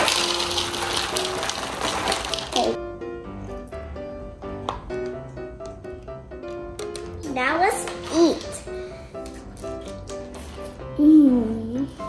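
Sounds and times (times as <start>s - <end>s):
cereal poured into a bowl: 0.0s - 2.8s.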